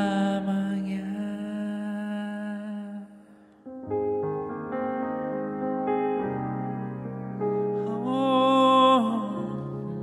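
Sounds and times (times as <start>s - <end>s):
man singing a long note: 7.8s - 10.0s.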